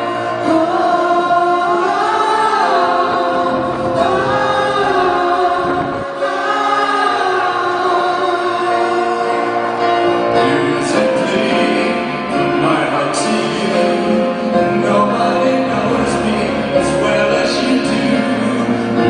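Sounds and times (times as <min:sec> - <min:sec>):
choir-like massed voices: 0:00.0 - 0:19.0
keyboards: 0:00.0 - 0:19.0
man singing long gliding notes: 0:00.0 - 0:19.0.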